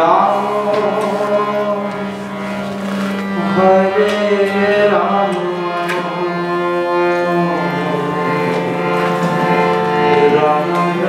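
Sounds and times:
harmonium drone chord: 0:00.0 - 0:11.0.

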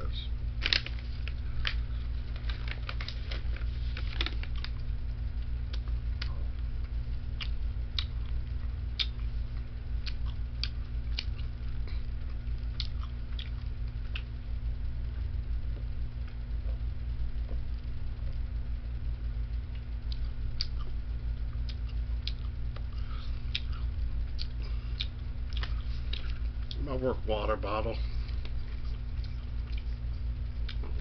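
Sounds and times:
steady low hum: 0:00.0 - 0:31.0
light clicks and crinkles: 0:00.6 - 0:04.9.

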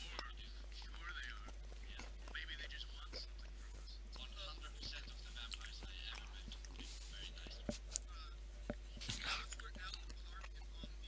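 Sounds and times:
steady low hum: 0:00.0 - 0:11.0
whispered speech: 0:00.0 - 0:11.0.

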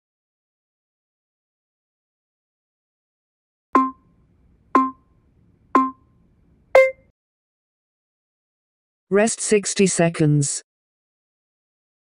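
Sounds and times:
final beep different pitch: 0:03.8 - 0:04.0, 0:04.8 - 0:05.0, 0:05.8 - 0:06.0, 0:06.8 - 0:07.1
interval timer beeps: 0:03.8 - 0:04.1, 0:04.8 - 0:05.1, 0:05.8 - 0:06.1, 0:06.8 - 0:07.1.

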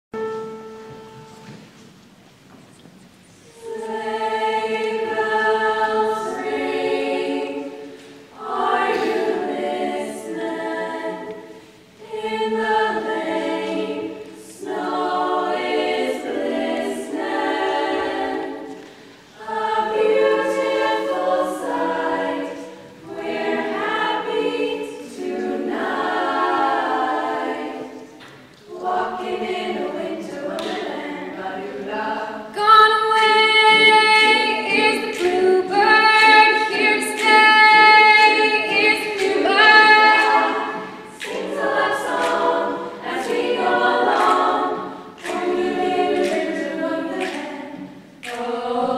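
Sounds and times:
female choir singing in harmony: 0:03.3 - 0:48.9.

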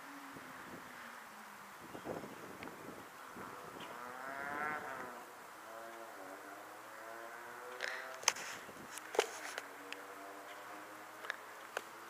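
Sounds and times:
vehicle engine revving: 0:03.3 - 0:08.4.

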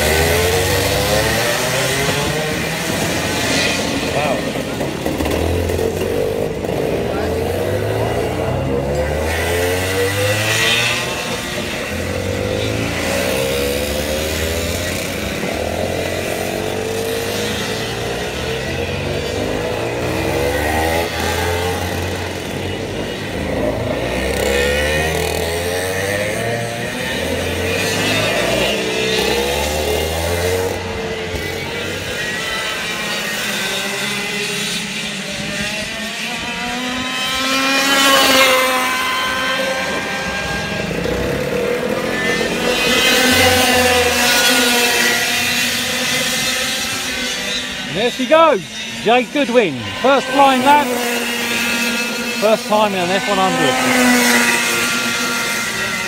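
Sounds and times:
kart engines revving: 0:00.0 - 0:56.0.

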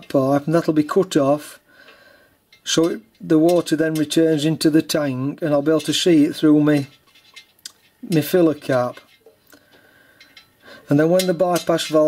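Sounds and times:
hands handling metal tank: 0:02.5 - 0:09.4, 0:10.2 - 0:12.0
person speaking: 0:02.6 - 0:07.0, 0:07.6 - 0:09.2, 0:10.8 - 0:12.0.

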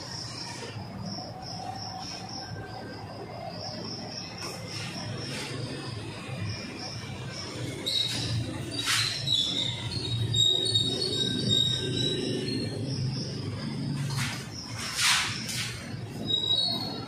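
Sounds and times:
insect trilling: 0:00.0 - 0:17.0
marker squeaking on whiteboard: 0:03.6 - 0:17.0.

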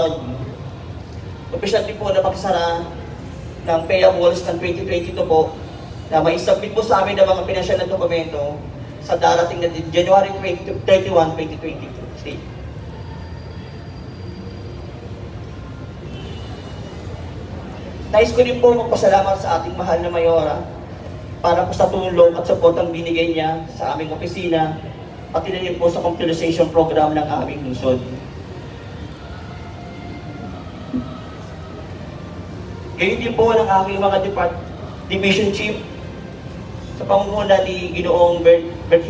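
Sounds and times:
low urban background rumble: 0:00.0 - 0:39.0.

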